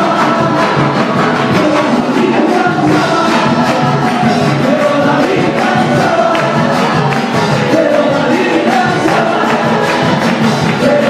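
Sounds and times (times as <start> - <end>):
congregation singing: 0.0 - 11.0
instrumental backing with beat: 0.0 - 11.0.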